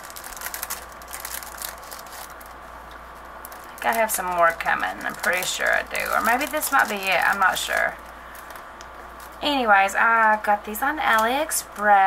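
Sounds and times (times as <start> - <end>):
plastic sleeve crinkling: 0.0 - 9.6.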